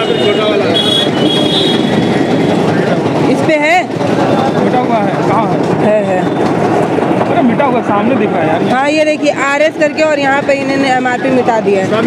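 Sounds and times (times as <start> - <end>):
crowd chatter: 0.0 - 12.0
street traffic: 0.0 - 12.0.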